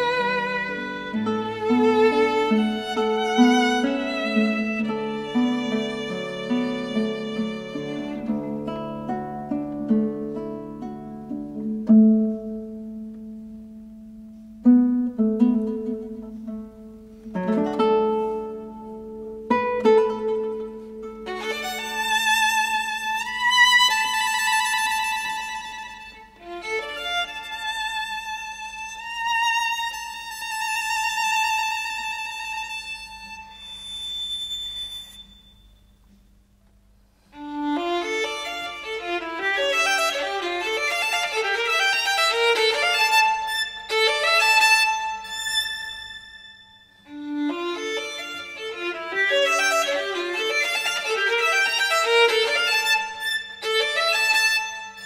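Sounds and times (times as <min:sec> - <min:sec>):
bowed string instrumental music: 0:00.0 - 0:35.3, 0:37.2 - 0:55.0.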